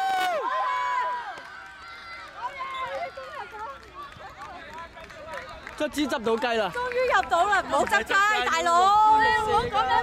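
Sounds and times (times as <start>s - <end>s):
children cheering: 0.0s - 4.2s.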